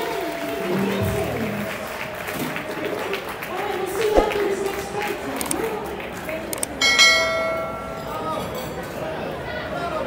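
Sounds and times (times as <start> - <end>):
bell-like metallic ring: 6.8 - 8.5.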